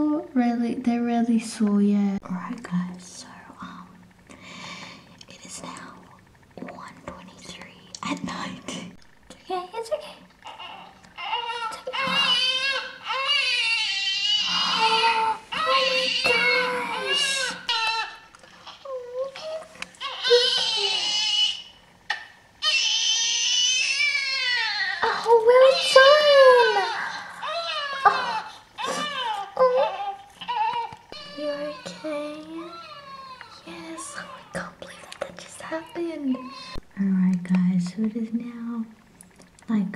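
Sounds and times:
newborn baby crying: 0:10.4 - 0:21.7, 0:22.6 - 0:36.8.

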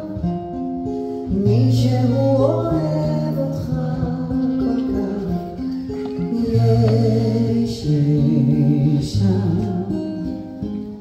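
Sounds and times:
person singing: 0:00.0 - 0:10.5
acoustic guitar: 0:00.0 - 0:11.0.

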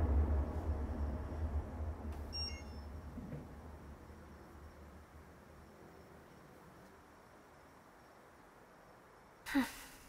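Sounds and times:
low hum: 0:00.0 - 0:08.7
faint high beep: 0:02.3 - 0:02.9.

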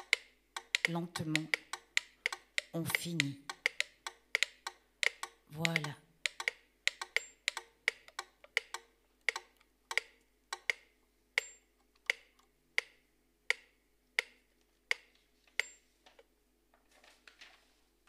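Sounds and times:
woody percussive clicks: 0:00.0 - 0:15.7.

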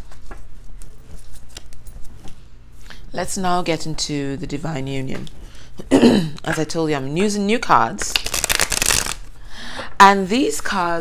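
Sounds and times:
cards being shuffled: 0:00.0 - 0:02.4, 0:08.0 - 0:09.3.

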